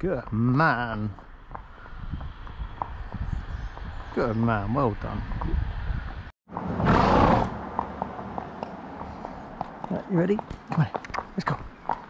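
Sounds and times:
horse hooves clip-clopping on tarmac: 0.0 - 4.2, 7.2 - 12.0.

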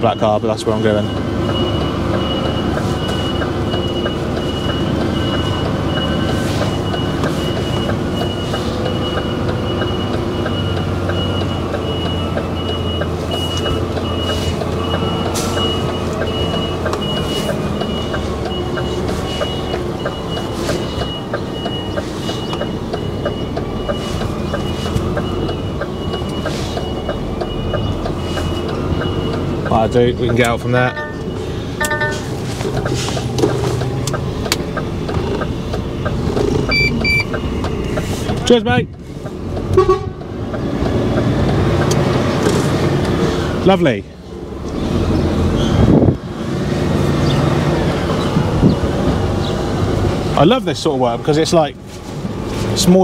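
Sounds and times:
truck reversing alarm beeping: 0.0 - 46.0
diesel engine rumble: 0.0 - 53.0.

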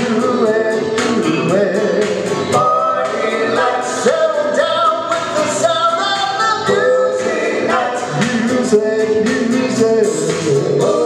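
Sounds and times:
backing track with steady beat: 0.0 - 11.0
male vocal group singing in harmony: 0.0 - 11.0.

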